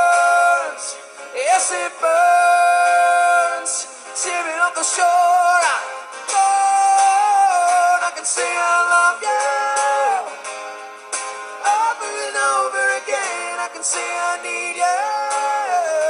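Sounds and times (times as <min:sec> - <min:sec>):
man singing long notes: 0:00.0 - 0:10.4, 0:11.6 - 0:16.0
strummed acoustic guitar: 0:00.0 - 0:16.0.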